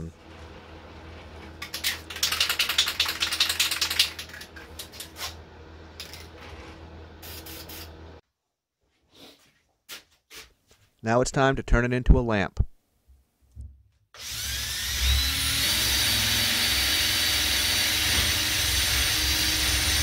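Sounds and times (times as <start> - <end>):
aerosol can spraying: 7.2 - 7.9.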